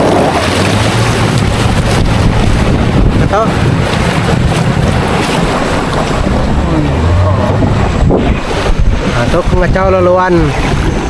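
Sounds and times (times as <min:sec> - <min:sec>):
outboard motor running: 0:00.0 - 0:11.0
water rushing past hull: 0:00.0 - 0:11.0
wind buffeting microphone: 0:00.0 - 0:11.0.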